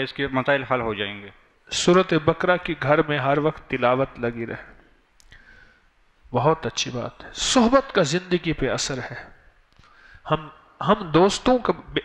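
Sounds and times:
man speaking: 0.0 - 4.8, 6.3 - 9.4, 10.2 - 12.0
faint soft hiss: 0.0 - 12.0.

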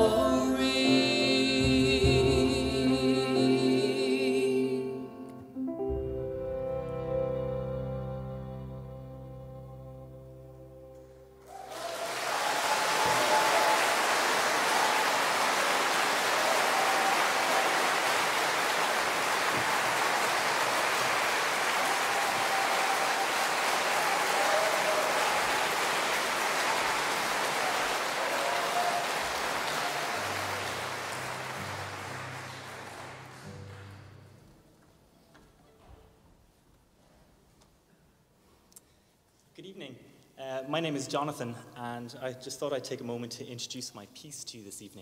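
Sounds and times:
audience applause: 11.4 - 34.5.

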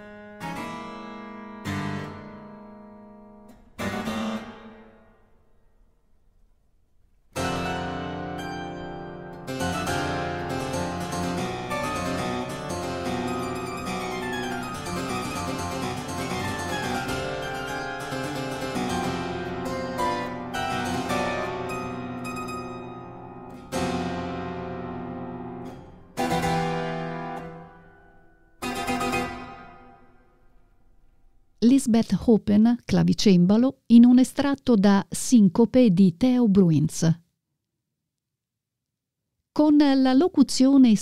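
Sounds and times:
solo harpsichord playing: 7.4 - 30.3.

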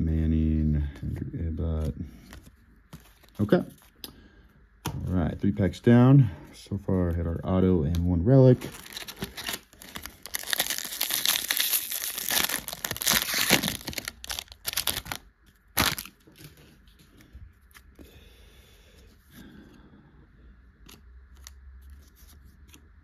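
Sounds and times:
foil wrapper tearing and crinkling: 8.6 - 16.2.

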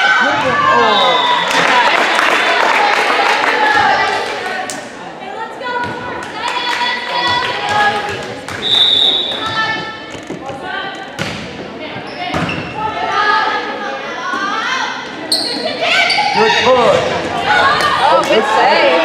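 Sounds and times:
voices of players and spectators: 0.0 - 19.0
volleyball hits: 7.2 - 12.8
sneakers squeaking on court: 7.8 - 12.8, 15.2 - 17.1.

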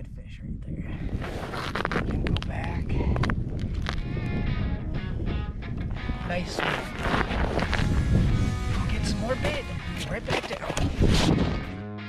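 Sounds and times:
wind rumble on microphone: 0.0 - 11.8
background music: 4.1 - 12.0.

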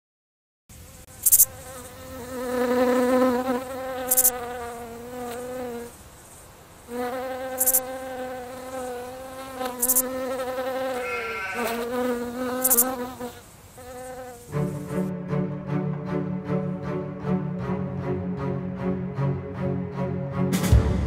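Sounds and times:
fly buzzing: 0.7 - 15.1.

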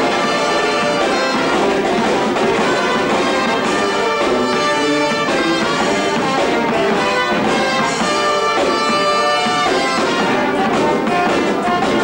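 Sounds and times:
brass band music: 0.0 - 12.0.

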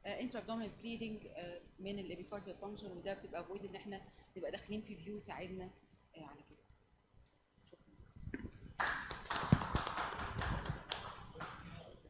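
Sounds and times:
people clapping: 8.8 - 11.8.

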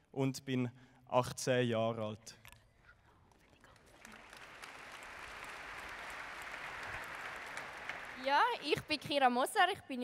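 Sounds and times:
audience applause: 3.9 - 9.1.

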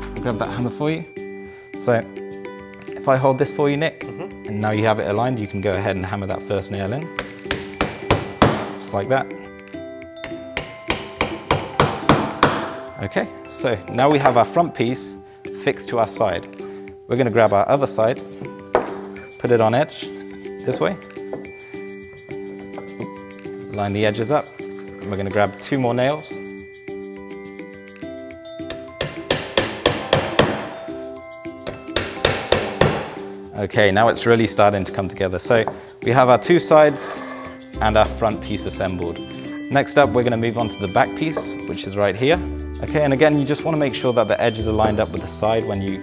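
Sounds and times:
background music: 0.0 - 46.0
hammer striking a nail: 7.1 - 8.8, 10.2 - 12.8, 28.6 - 30.8, 31.6 - 33.3.

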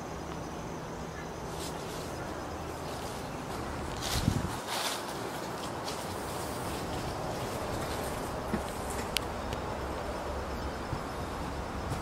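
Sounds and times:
outdoor background noise: 0.0 - 12.0
footstep scuff: 2.9 - 9.1.

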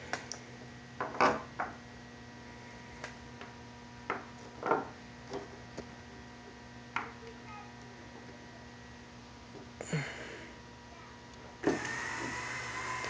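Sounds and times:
faint electrical hum: 0.0 - 13.0.

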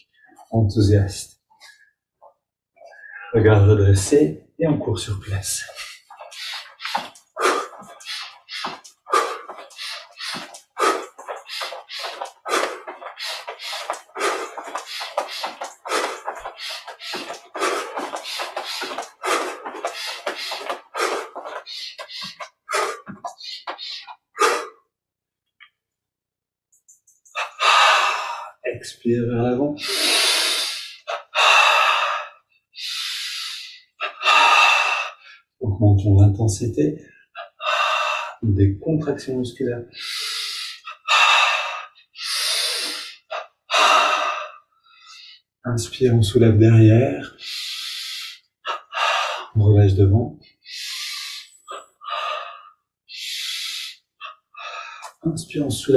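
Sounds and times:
man's rhythmic breath puffs: 5.5 - 24.9, 26.8 - 28.7, 29.8 - 35.6, 37.0 - 38.5, 39.9 - 45.5, 47.2 - 49.6, 50.4 - 55.9
man breathing forcefully: 5.6 - 24.8, 27.4 - 28.6, 29.8 - 35.4, 37.4 - 38.4, 39.9 - 45.4, 47.4 - 49.6, 50.6 - 55.2.

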